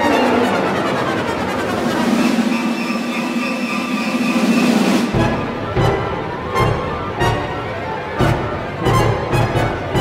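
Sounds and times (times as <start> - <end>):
orchestra playing dense drone: 0.0 - 10.0.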